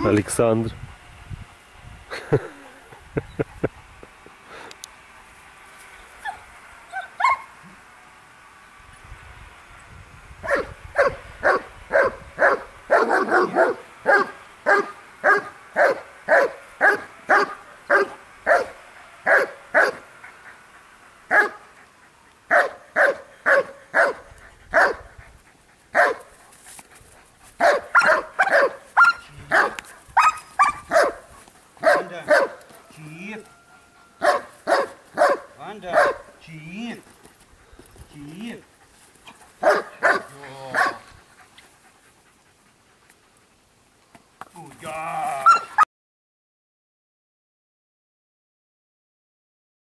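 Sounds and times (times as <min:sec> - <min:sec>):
dogs barking: 0:06.2 - 0:07.6, 0:10.4 - 0:21.8, 0:22.5 - 0:25.2, 0:25.9 - 0:26.3, 0:27.6 - 0:33.0, 0:33.7 - 0:36.4, 0:39.5 - 0:41.8, 0:45.4 - 0:45.8.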